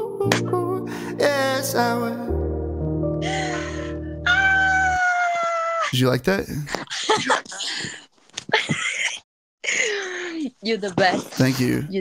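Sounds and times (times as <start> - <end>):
backing track chord: 0.0 - 4.3.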